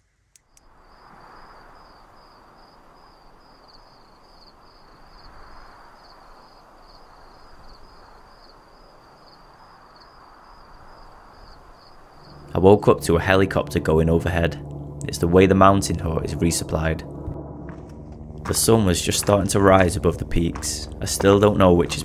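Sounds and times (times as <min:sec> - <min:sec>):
crickets chirping: 0:00.4 - 0:22.0.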